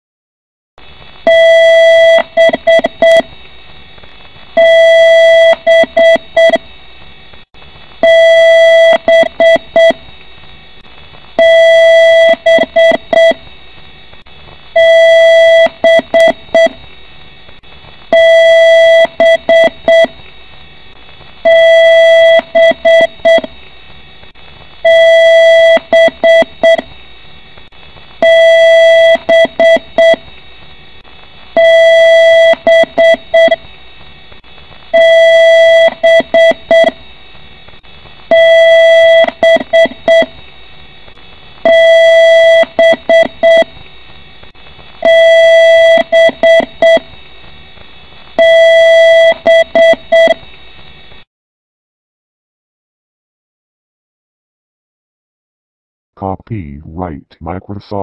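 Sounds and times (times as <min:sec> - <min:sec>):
computer beep code: 0:01.3 - 0:03.3, 0:08.0 - 0:10.0, 0:11.4 - 0:13.4, 0:14.8 - 0:16.8, 0:18.2 - 0:20.1, 0:21.5 - 0:23.5, 0:24.9 - 0:26.9, 0:28.2 - 0:30.2, 0:31.6 - 0:33.6, 0:35.0 - 0:37.0, 0:38.3 - 0:40.3, 0:41.7 - 0:43.7, 0:45.0 - 0:47.1, 0:48.4 - 0:50.4.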